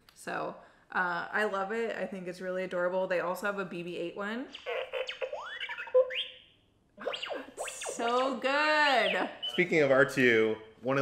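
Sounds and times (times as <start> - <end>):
electronic robot beeps and chirps: 4.5 - 10.2.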